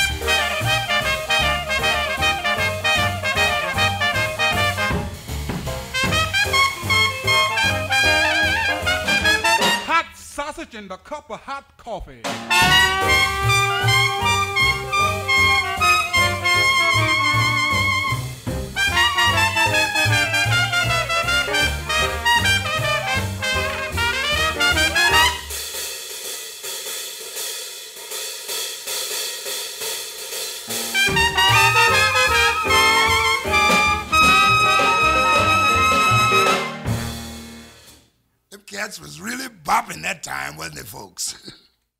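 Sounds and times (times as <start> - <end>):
jazz band playing ragtime: 0.0 - 10.0, 12.2 - 25.8, 30.6 - 37.9, 38.5 - 41.1.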